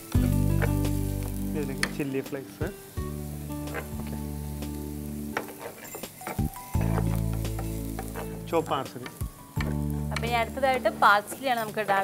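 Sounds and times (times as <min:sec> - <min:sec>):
background music: 0:00.0 - 0:12.0
onion sizzling in oil: 0:00.0 - 0:12.0
spatula scraping pan: 0:03.6 - 0:04.2, 0:05.2 - 0:08.4.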